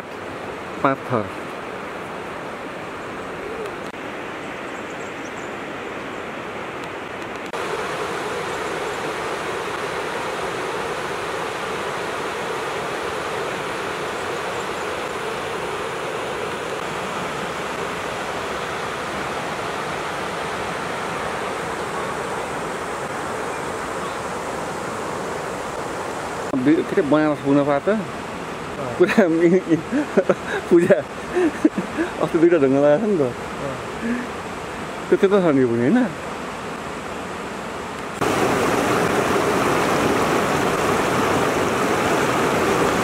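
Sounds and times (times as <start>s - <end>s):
river rushing over stones: 0.0s - 43.0s.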